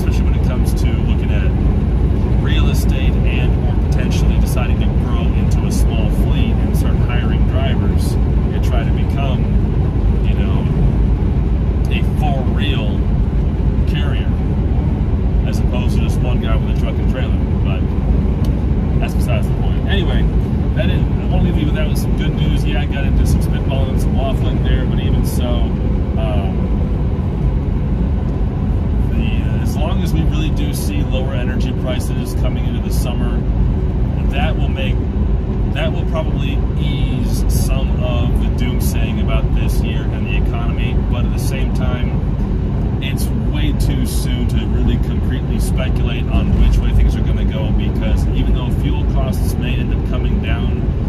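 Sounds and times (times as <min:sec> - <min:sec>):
man talking: 0:00.0 - 0:01.6, 0:02.3 - 0:09.6, 0:10.2 - 0:10.8, 0:11.8 - 0:13.1, 0:13.8 - 0:14.4, 0:15.4 - 0:17.9, 0:19.0 - 0:26.8, 0:29.0 - 0:33.5, 0:34.2 - 0:35.0, 0:35.7 - 0:42.3, 0:43.0 - 0:50.9
truck engine and tyres droning: 0:00.0 - 0:51.0.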